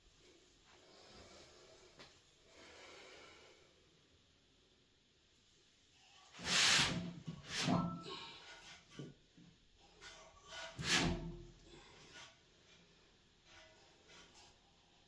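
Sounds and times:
quiet breathing: 0.2 - 4.2, 11.5 - 15.0.

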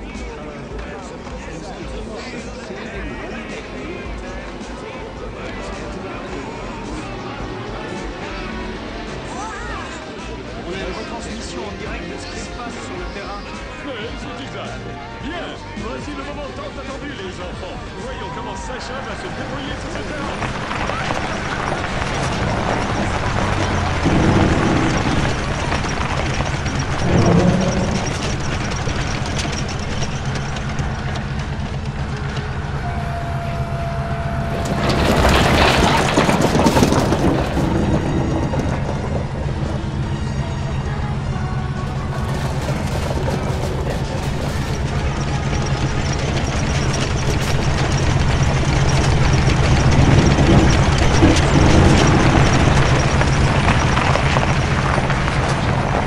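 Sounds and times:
low mechanical engine drone: 18.9 - 56.0.

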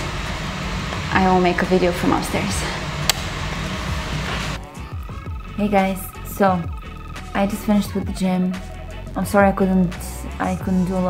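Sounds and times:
blown kiss lip smack: 3.1 - 3.3.

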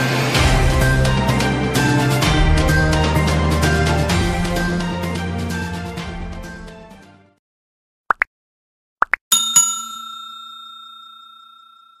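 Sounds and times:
bell-like chime ringing: 9.3 - 12.0.

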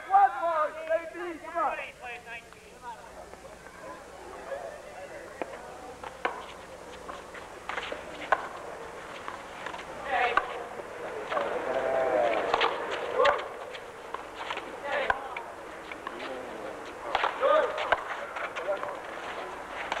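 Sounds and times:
voices shouting: 9.9 - 14.0.

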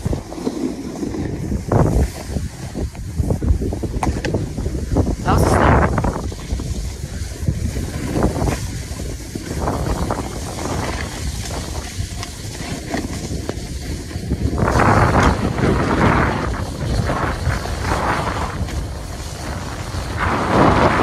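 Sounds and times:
snowboard sliding over snow: 0.0 - 21.0
wind buffeting microphone: 0.0 - 21.0.

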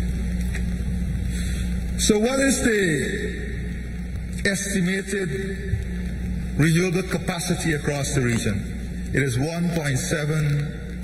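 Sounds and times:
low hum and rumble: 0.0 - 11.0.

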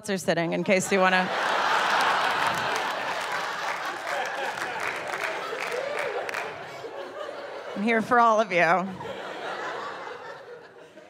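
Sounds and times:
audience laughing: 0.5 - 11.0
audience applauding: 1.0 - 7.5.

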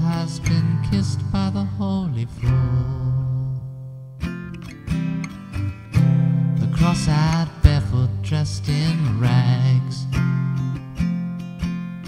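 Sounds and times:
person singing: 0.0 - 3.8, 6.6 - 10.6
strummed acoustic guitar: 0.0 - 12.0.

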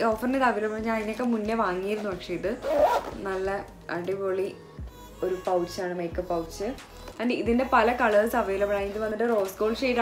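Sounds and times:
zipper: 2.5 - 3.4.

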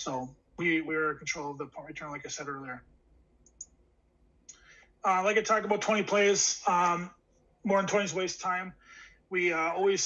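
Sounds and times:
computer mouse click: 3.4 - 3.8.

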